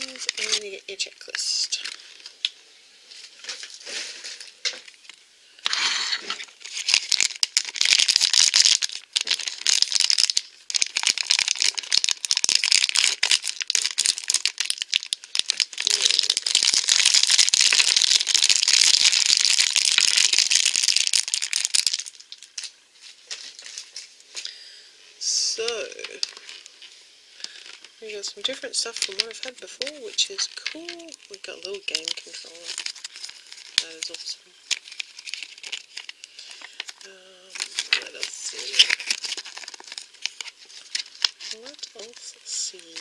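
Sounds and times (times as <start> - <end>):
plastic packaging crinkling: 0.0 - 24.6, 25.6 - 43.0.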